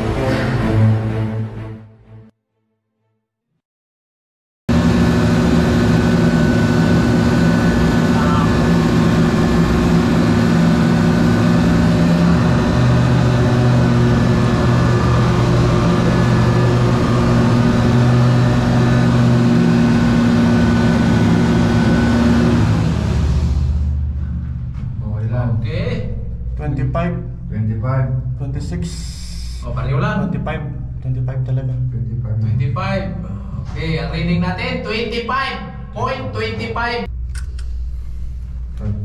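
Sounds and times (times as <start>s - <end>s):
crane machinery humming and whirring: 4.7s - 25.0s.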